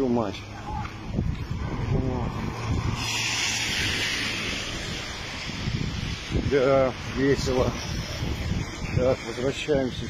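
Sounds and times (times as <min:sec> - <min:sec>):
wind buffeting microphone: 0:00.0 - 0:10.0
rain hissing on wet pavement: 0:02.5 - 0:09.8.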